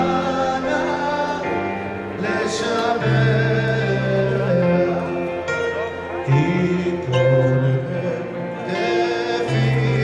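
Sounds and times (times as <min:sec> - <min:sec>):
men singing: 0:00.0 - 0:05.4, 0:06.2 - 0:10.0
instrumental music: 0:00.0 - 0:10.0.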